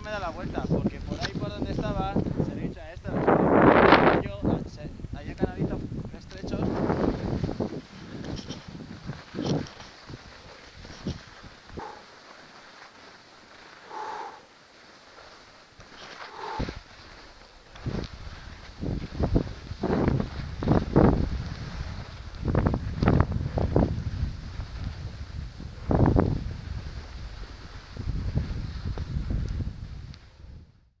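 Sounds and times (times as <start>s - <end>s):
wind buffeting microphone: 0.0s - 12.1s, 16.0s - 30.9s
skis sliding on snow: 6.3s - 30.4s.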